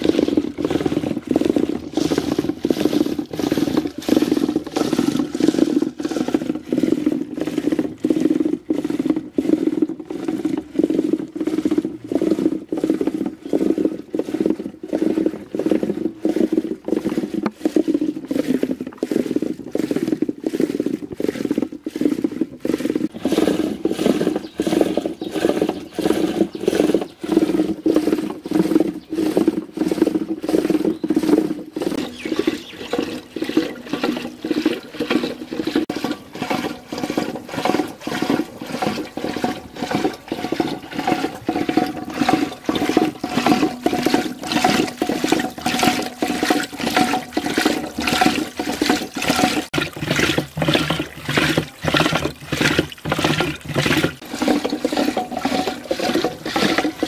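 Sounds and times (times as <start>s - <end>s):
yogurt sloshing in metal pot: 0.0s - 57.0s.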